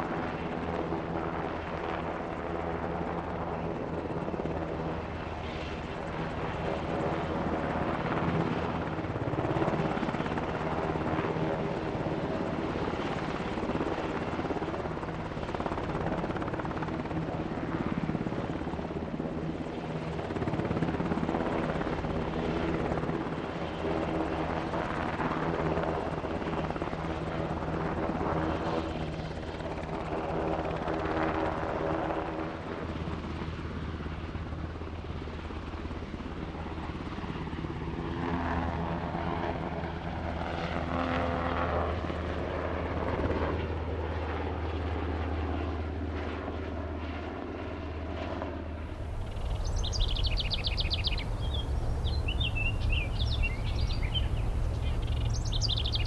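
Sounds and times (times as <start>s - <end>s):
helicopter hovering: 0.0s - 56.0s.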